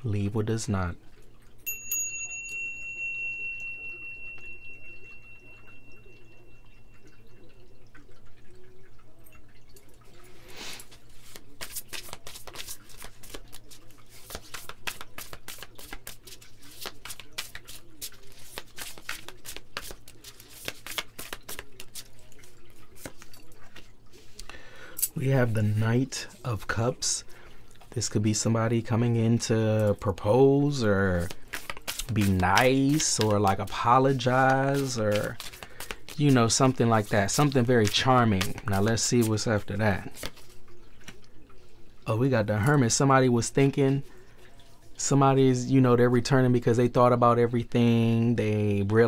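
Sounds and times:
small brass bell ringing: 0:01.6 - 0:07.5
cards being shuffled: 0:10.6 - 0:24.4, 0:30.8 - 0:41.2.

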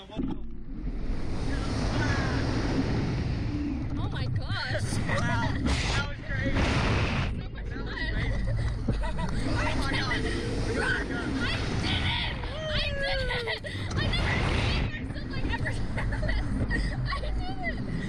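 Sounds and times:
wind rushing over microphone: 0:00.4 - 0:18.0
riders yelling and laughing: 0:08.0 - 0:18.0.

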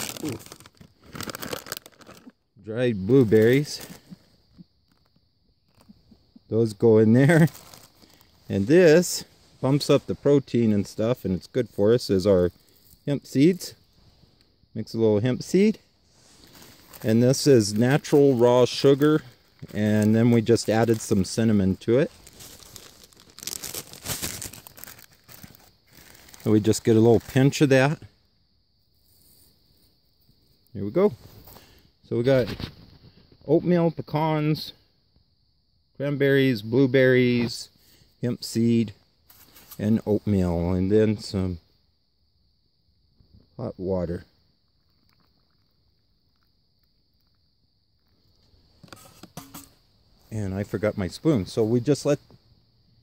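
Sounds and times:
plastic bag crinkling: 0:00.0 - 0:02.4, 0:07.4 - 0:08.3, 0:22.0 - 0:27.4.

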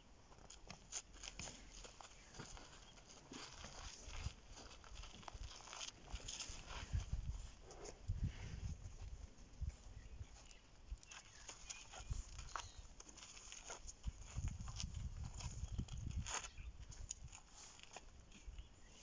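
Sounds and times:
dry crackles: 0:00.3 - 0:07.9, 0:10.3 - 0:18.7
elephant footsteps on dirt: 0:00.3 - 0:19.0.

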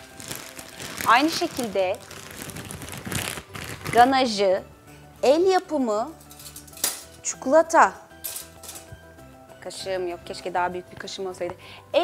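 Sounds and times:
plastic bag crinkling: 0:00.0 - 0:04.1.

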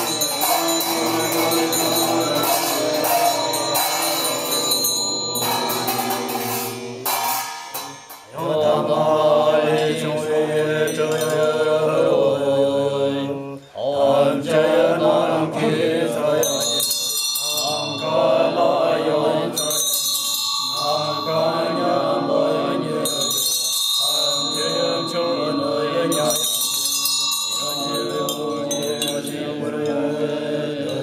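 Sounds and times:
handheld bells ringing: 0:00.0 - 0:08.8, 0:10.8 - 0:11.9, 0:16.1 - 0:31.0
monks chanting in low voices: 0:00.0 - 0:31.0.

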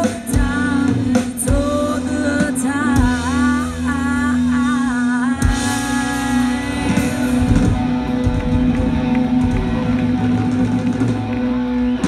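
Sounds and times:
rock band sustained chord: 0:00.0 - 0:12.0.

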